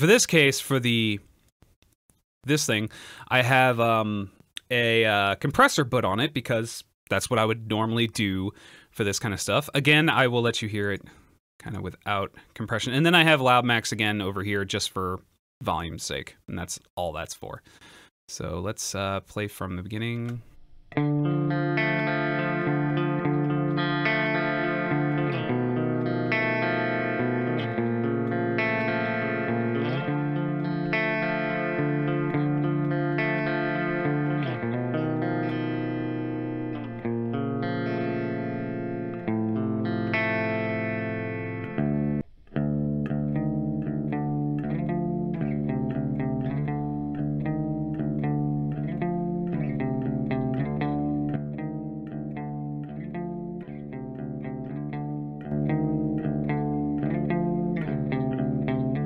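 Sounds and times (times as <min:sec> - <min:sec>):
clean electric guitar: 0:20.2 - 0:59.0.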